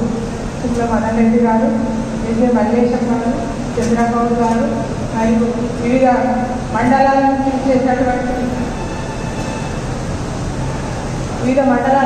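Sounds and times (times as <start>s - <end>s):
hall background rumble: 0.0s - 12.0s.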